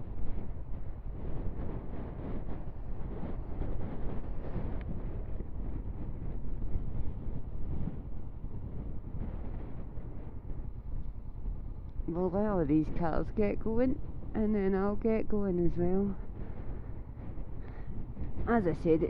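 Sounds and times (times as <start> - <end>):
strong wind buffeting microphone: 0.0 - 19.0.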